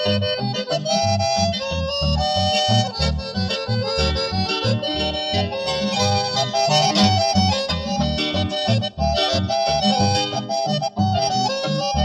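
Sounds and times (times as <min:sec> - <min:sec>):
accordion playing lively melody: 0:00.0 - 0:12.0
pulsing bass: 0:00.0 - 0:12.0.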